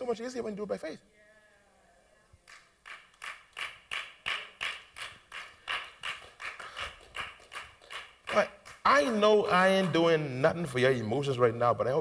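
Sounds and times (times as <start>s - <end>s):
hands clapping rhythmically: 2.4s - 10.3s.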